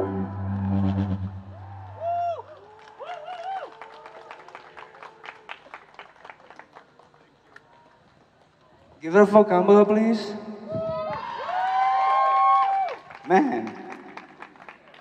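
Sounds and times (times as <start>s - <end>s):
held keyboard notes: 0.0s - 1.6s
audience whooping: 0.0s - 4.5s, 10.8s - 13.0s
scattered clapping: 2.5s - 8.7s, 12.6s - 15.0s.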